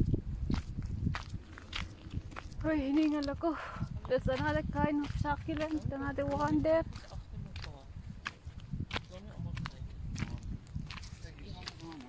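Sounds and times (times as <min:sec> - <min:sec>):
low rumble: 0:00.0 - 0:11.4
footsteps on stony ground: 0:00.0 - 0:12.0.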